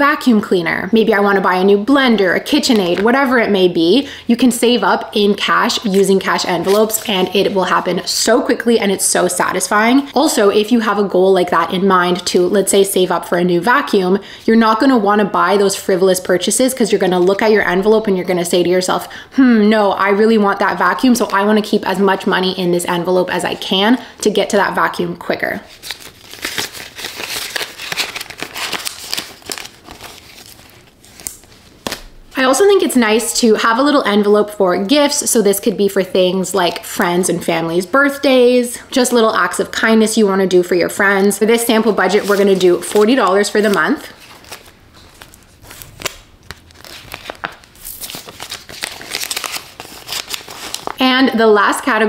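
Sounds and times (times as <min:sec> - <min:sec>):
plastic banknotes rustling: 0:05.4 - 0:07.8, 0:25.7 - 0:32.1, 0:41.6 - 0:51.0.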